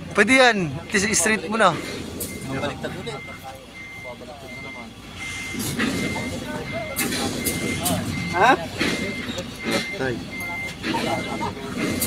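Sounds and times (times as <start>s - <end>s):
truck engine rumble: 0.0s - 12.0s
truck reversing alarm beeping: 0.0s - 12.0s.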